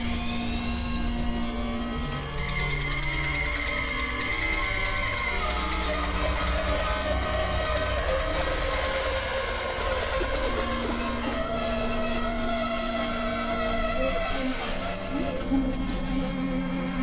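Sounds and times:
noisy buzzing bed: 0:00.0 - 0:17.0
synthesizer drones: 0:00.0 - 0:17.0.

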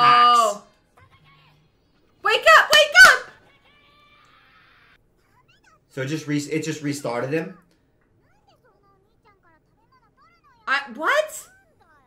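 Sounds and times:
person shouting: 0:00.0 - 0:00.6.

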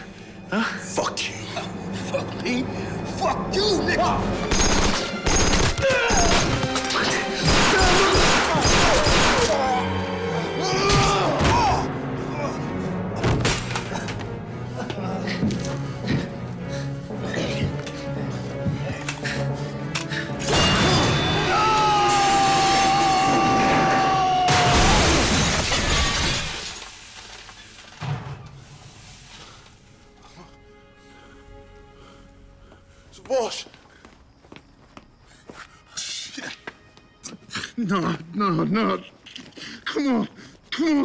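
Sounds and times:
action score music: 0:00.0 - 0:24.5
glass shattering: 0:20.4 - 0:21.5, 0:24.5 - 0:28.1
debris falling: 0:20.5 - 0:28.4.

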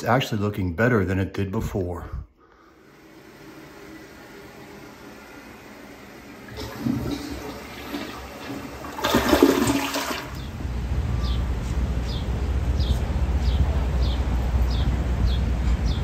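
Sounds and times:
toilet flushing: 0:02.8 - 0:10.5.

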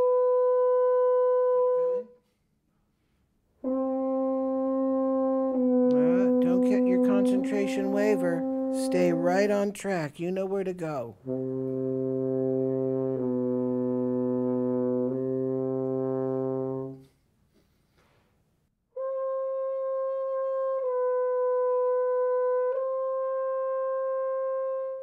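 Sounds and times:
french horn long notes: 0:00.0 - 0:02.3, 0:03.6 - 0:09.6, 0:11.2 - 0:17.2, 0:19.0 - 0:25.0.

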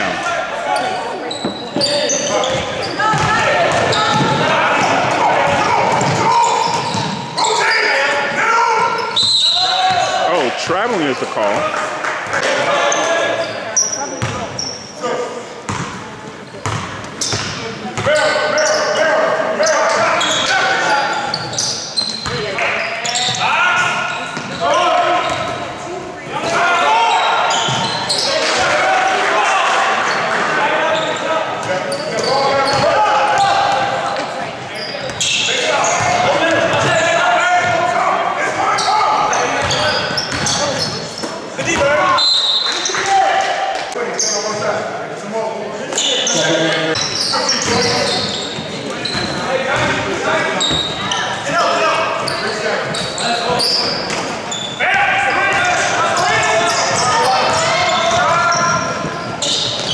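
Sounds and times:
voices of players and spectators: 0:00.0 - 0:59.9.

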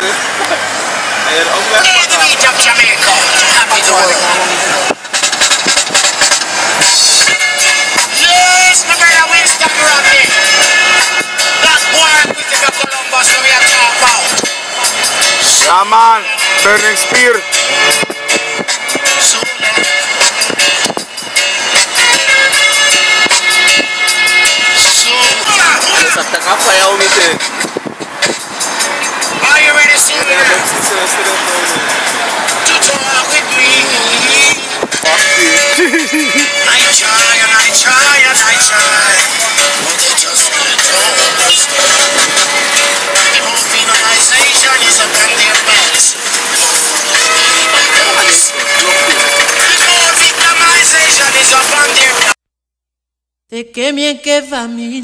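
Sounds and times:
road and wind noise inside car: 0:00.0 - 0:52.2
street traffic: 0:00.0 - 0:52.4
person speaking: 0:32.7 - 0:39.1.

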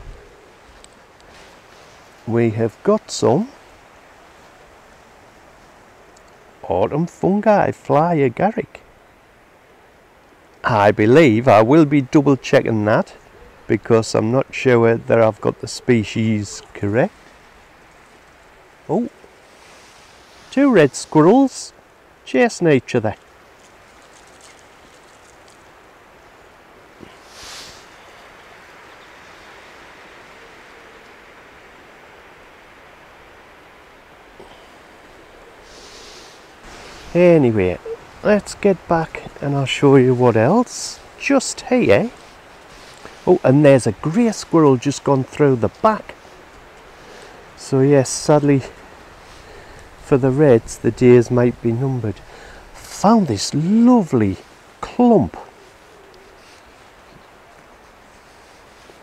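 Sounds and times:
outdoor background hiss: 0:00.0 - 0:59.0
brief rustling hiss: 0:19.4 - 0:21.3, 0:27.1 - 0:28.0, 0:35.6 - 0:37.2, 0:42.1 - 0:43.3.

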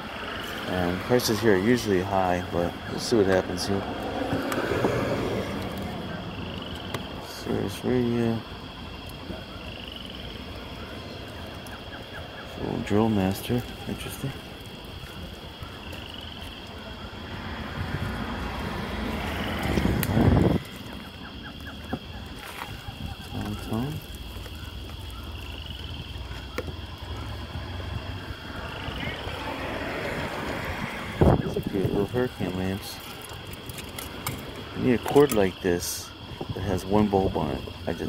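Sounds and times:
background voices: 0:00.0 - 0:38.0
wind buffeting microphone: 0:08.4 - 0:38.0.

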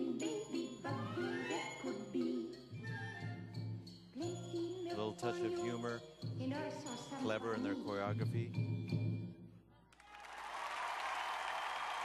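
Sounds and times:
audience applauding: 0:10.0 - 0:12.0.

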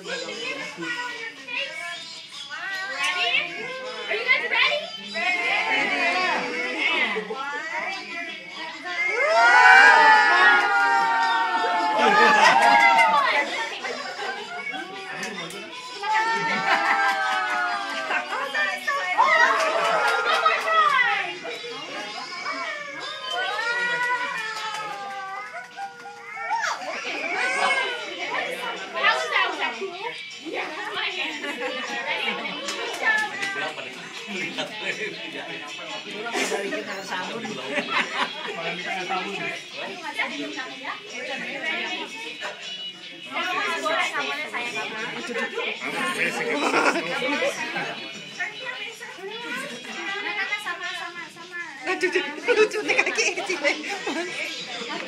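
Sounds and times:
young children chattering: 0:00.0 - 0:55.0.

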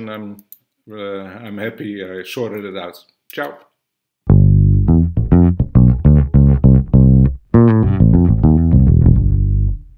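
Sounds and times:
electric bass guitar plucked notes: 0:04.3 - 0:09.9.

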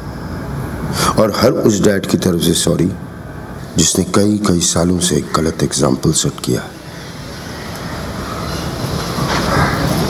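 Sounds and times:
steady rumbling noise: 0:00.0 - 0:10.0.

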